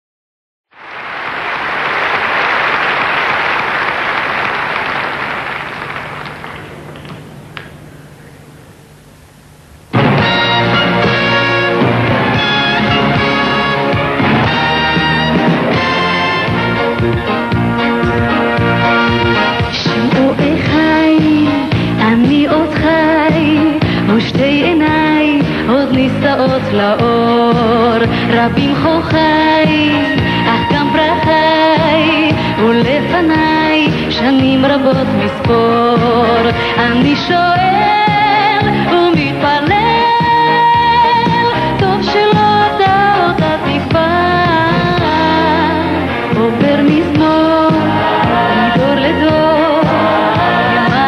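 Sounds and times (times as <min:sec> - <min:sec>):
audience applause: 0:00.8 - 0:07.2
live pop band: 0:10.0 - 0:51.0
person singing: 0:18.4 - 0:51.0.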